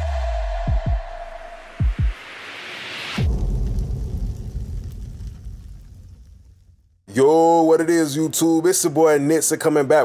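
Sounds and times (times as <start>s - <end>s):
cinematic boom with falling sweep: 0.0s - 6.8s.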